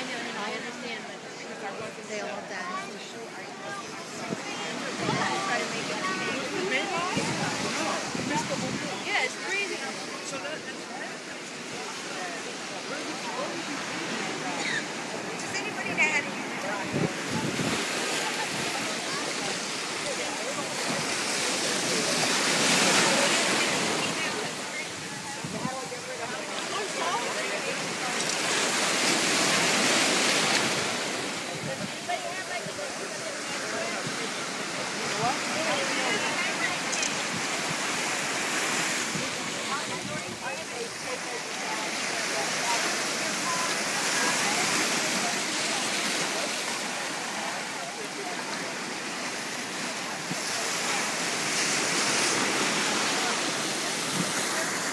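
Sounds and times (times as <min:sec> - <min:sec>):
faint voices of people: 0:00.0 - 0:54.9
ocean waves breaking: 0:00.0 - 0:54.9
surf washing in: 0:00.0 - 0:54.9
wind buffeting microphone: 0:04.2 - 0:09.1, 0:16.7 - 0:18.8, 0:25.0 - 0:26.0.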